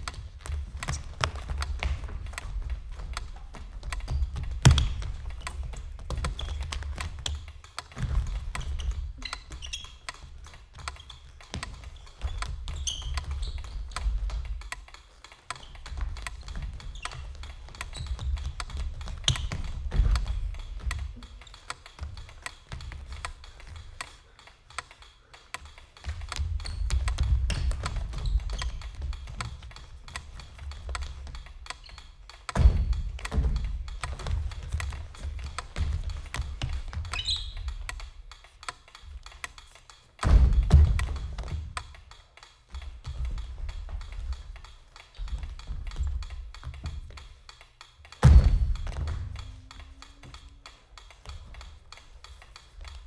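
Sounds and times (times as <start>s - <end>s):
sneakers tapping on wooden stage: 0.0s - 14.9s, 15.7s - 24.1s, 25.9s - 38.3s, 40.2s - 42.1s, 48.2s - 50.5s.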